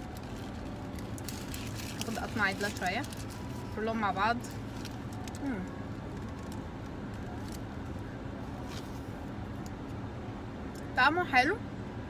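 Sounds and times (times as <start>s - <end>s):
wrapper handling: 0.0s - 3.8s.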